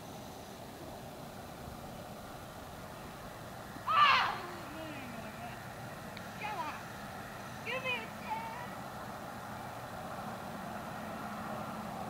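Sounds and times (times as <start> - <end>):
outdoor background noise: 0.0 - 12.0
high-pitched cry: 3.9 - 5.1.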